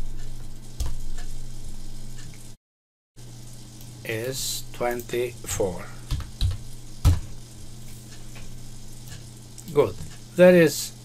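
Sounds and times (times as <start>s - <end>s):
faint recording hiss: 3.2s - 11.0s
steady low hum: 3.2s - 11.0s.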